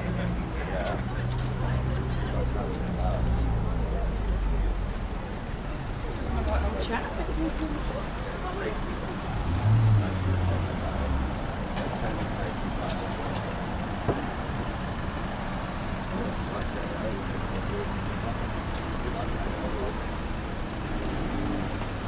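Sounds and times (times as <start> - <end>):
cars driving past: 0.0 - 22.0
vehicle low rumble: 0.0 - 22.0.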